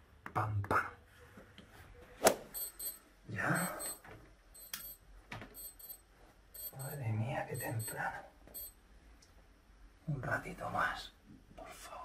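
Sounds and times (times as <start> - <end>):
electronic alarm beeping: 2.6 - 4.0, 4.6 - 5.0, 5.6 - 6.0, 6.6 - 8.8
sharp clicks: 4.6 - 5.0.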